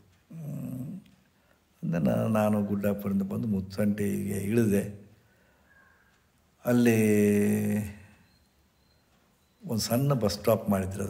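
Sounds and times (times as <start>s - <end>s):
man humming hmm: 0.3s - 1.1s.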